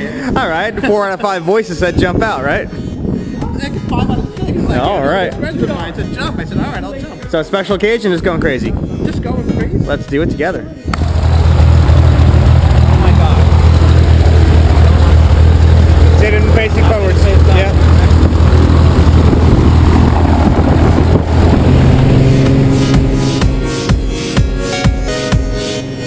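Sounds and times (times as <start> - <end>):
propeller plane engine droning: 10.9 - 26.0
electronic music with a beat: 22.9 - 26.0.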